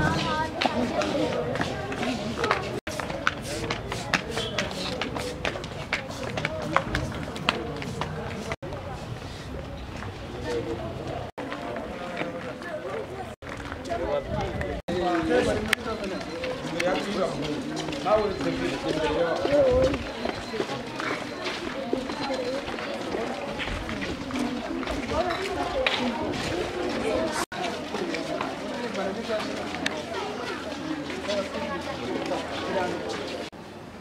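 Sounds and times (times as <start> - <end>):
footsteps on paving: 0.0 - 33.5
children talking: 0.0 - 33.6
indistinct chatter of people: 0.0 - 34.0.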